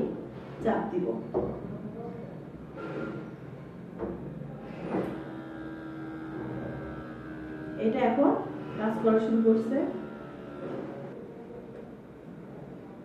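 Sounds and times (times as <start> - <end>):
electric pump humming: 4.6 - 11.2.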